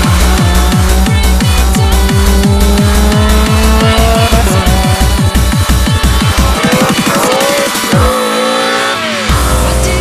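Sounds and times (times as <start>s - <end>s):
drum and bass music: 0.0s - 10.0s
rally car engine revving: 0.0s - 10.0s.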